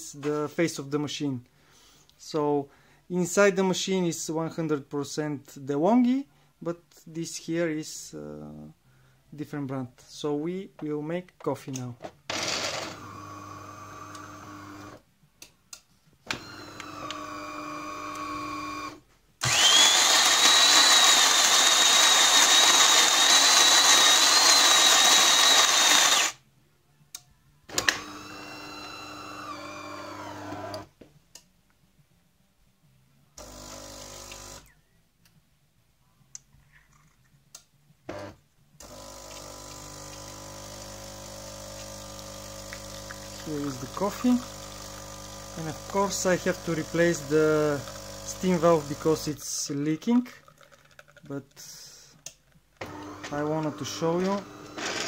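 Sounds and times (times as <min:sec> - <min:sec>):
coffee grinder whining: 0:12.3 - 0:15.0, 0:16.3 - 0:26.4, 0:27.8 - 0:30.9, 0:33.4 - 0:34.7, 0:38.1 - 0:49.3, 0:50.4 - 0:51.3, 0:52.8 - 0:55.0
espresso machine motor runs: 0:12.3 - 0:15.0, 0:16.4 - 0:26.4, 0:27.9 - 0:30.8, 0:33.4 - 0:34.6, 0:38.1 - 0:49.1, 0:52.8 - 0:55.0
espresso machine pump running: 0:12.3 - 0:15.0, 0:16.4 - 0:26.4, 0:27.9 - 0:30.8, 0:33.4 - 0:34.6, 0:38.1 - 0:49.2, 0:52.8 - 0:55.0.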